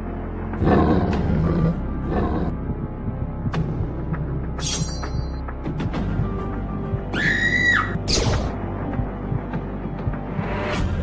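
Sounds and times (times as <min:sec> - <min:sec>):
dark ominous background music: 0:00.0 - 0:11.0
high-pitched scream: 0:07.1 - 0:08.0.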